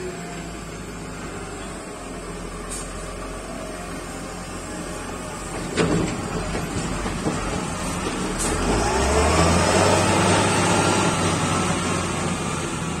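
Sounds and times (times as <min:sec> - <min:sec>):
diesel engine revving and droning: 0:00.0 - 0:13.0.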